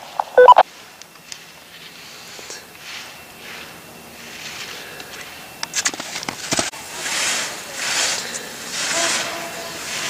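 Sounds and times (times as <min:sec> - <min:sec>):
skis scraping snow: 0:01.7 - 0:10.0.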